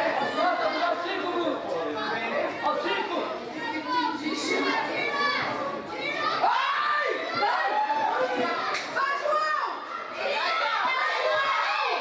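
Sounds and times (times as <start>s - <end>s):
hubbub of chatter: 0.0s - 12.0s
young voices shouting: 0.0s - 12.0s.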